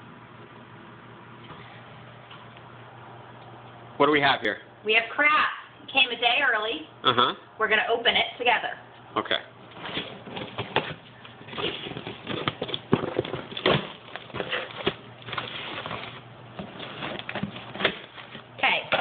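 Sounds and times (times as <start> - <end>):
plastic wrapping crinkling: 9.7 - 18.6
cardboard handled: 9.8 - 18.5.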